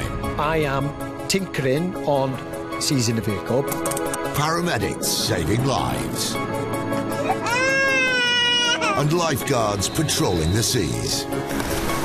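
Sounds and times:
background music: 0.0s - 12.0s
baby crying: 7.1s - 9.4s.

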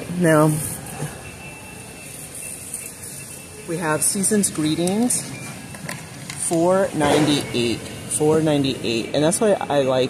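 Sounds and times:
faint high steady tone: 0.0s - 10.0s
store background hum and hiss: 0.0s - 10.0s.

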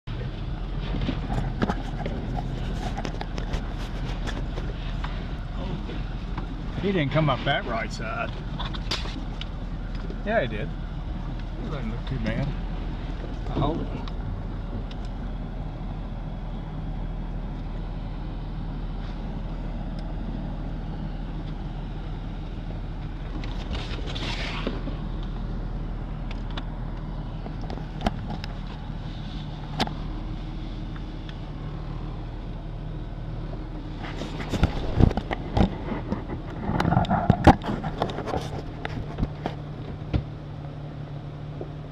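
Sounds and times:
vehicle engine running: 0.0s - 41.9s.

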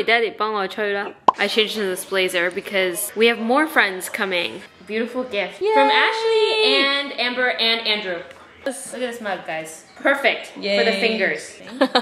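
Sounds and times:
woman speaking: 0.0s - 11.5s.

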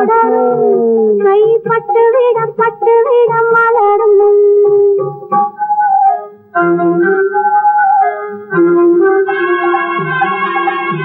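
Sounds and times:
quick rhythmic melody: 1.2s - 11.0s.

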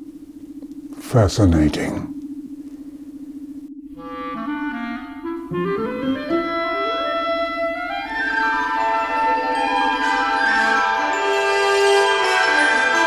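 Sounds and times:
pulsing low hum: 0.0s - 11.3s
woodwind-like climbing notes: 3.5s - 13.0s.

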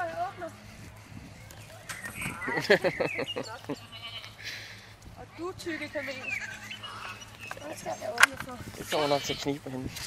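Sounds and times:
goat bleating: 3.5s - 4.7s, 5.7s - 8.1s, 8.8s - 9.6s.

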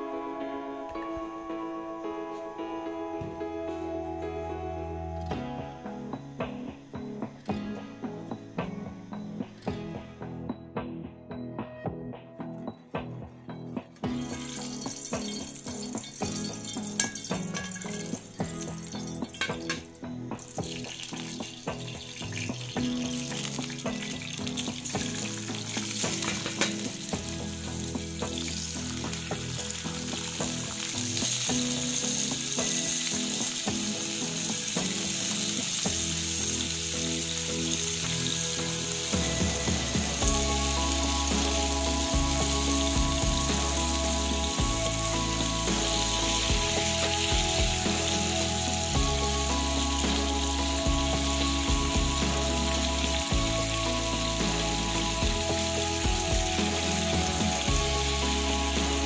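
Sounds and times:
background music with low notes: 0.0s - 59.0s
potatoes sizzling in hot oil: 14.1s - 59.0s.

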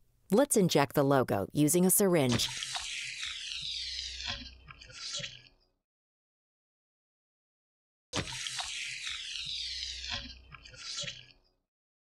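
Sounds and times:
liquid squirting hiss: 8.2s - 10.2s.

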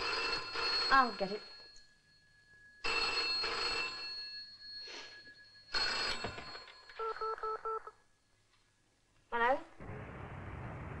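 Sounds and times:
telephone bell ringing: 0.0s - 8.1s.

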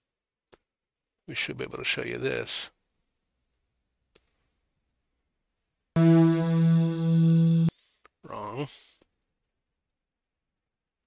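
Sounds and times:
sustained synthesizer chord: 6.0s - 7.7s.

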